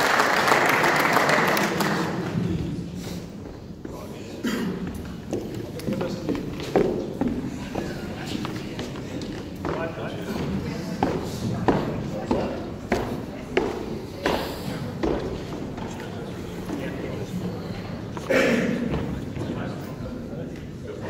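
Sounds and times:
murmur of voices in hall: 0:00.0 - 0:21.0.

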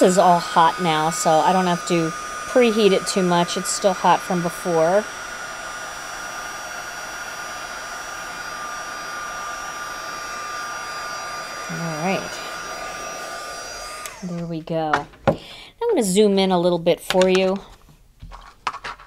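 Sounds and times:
heat tool blowing with whine: 0:00.0 - 0:14.8.

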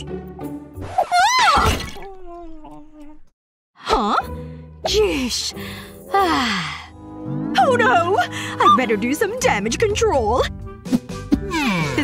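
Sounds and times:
background music: 0:00.0 - 0:01.0, 0:03.8 - 0:12.0.

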